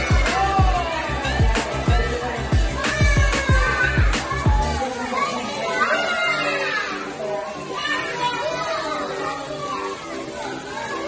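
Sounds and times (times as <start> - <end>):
children chattering and calling out: 0.0 - 11.0
faint music: 0.0 - 11.0.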